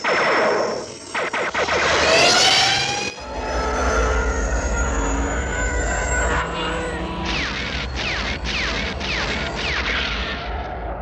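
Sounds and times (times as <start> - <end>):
spaceship whoosh with rising whine: 0.0 - 11.0.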